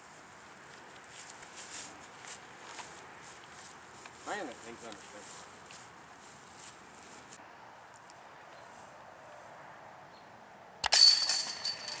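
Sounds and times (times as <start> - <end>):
metallic bell ringing: 10.8 - 12.0.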